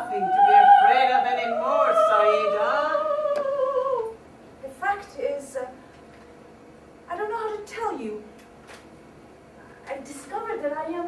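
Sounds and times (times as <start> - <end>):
woman singing operatic note: 0.0 - 4.2.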